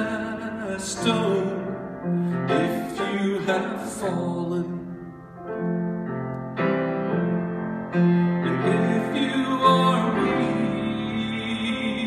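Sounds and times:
piano playing slow chords: 0.0s - 12.0s.

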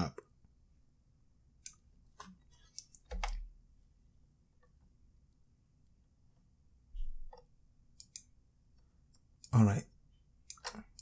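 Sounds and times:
computer mouse clicks: 1.6s - 3.4s, 7.3s - 8.3s, 10.4s - 11.0s.

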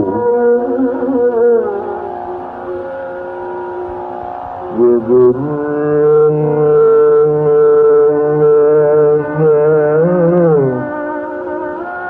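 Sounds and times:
held note over a drone: 0.0s - 12.0s
melodic phrase with bending pitch: 0.0s - 12.0s.

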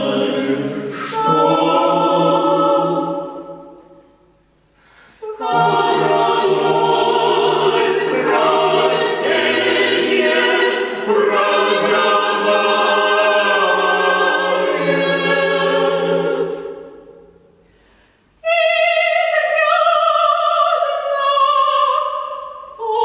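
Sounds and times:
high voice singing with vibrato: 0.0s - 3.8s, 5.2s - 13.1s
choir singing a cappella: 0.0s - 4.4s, 5.2s - 17.6s, 18.4s - 23.0s.

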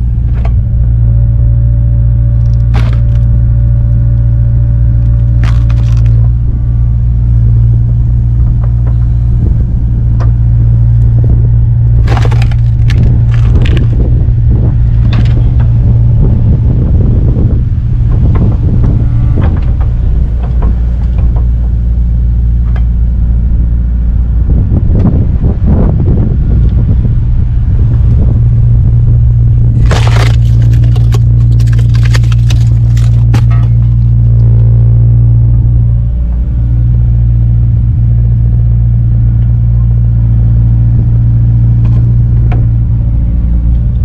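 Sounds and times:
excavator diesel engine running: 0.0s - 44.0s
wood cracking and splitting: 2.2s - 6.7s, 11.8s - 15.8s, 29.7s - 34.6s.

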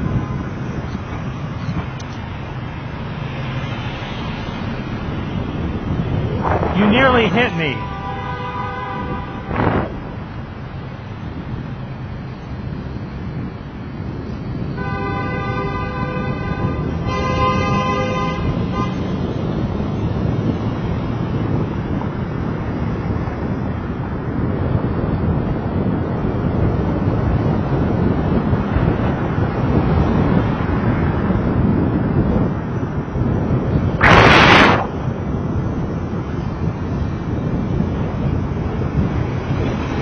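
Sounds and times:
road and traffic noise: 0.0s - 40.0s
wind on microphone: 0.0s - 40.0s
horn blasts: 7.1s - 10.1s, 14.8s - 19.2s.

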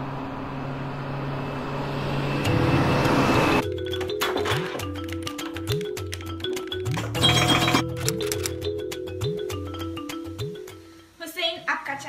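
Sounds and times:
city road traffic: 0.0s - 3.6s.

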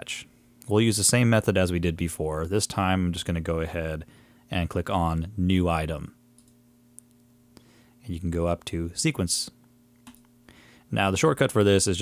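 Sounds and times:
low steady hum: 0.0s - 12.0s
faint computer mouse clicks: 6.4s - 7.3s.

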